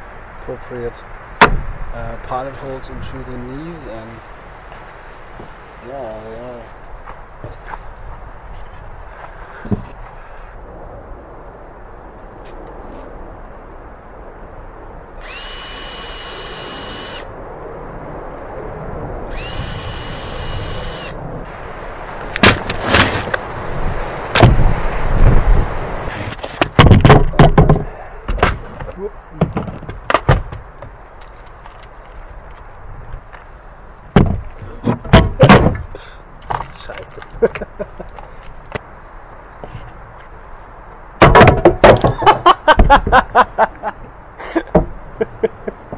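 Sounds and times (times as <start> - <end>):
cordless drill whining: 15.2 - 17.3, 19.3 - 21.2.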